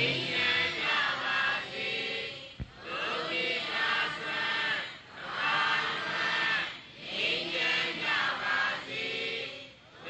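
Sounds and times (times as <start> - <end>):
man chanting: 0.0 - 0.9.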